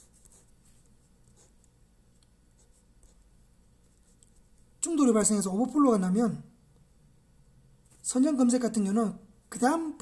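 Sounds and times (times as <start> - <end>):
pen scratching on paper: 0.0 - 1.7, 2.6 - 4.5.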